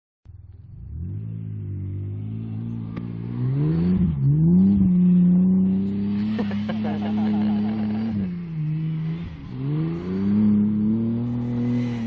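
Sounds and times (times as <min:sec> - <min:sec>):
truck engine revving hard: 0:00.9 - 0:12.0.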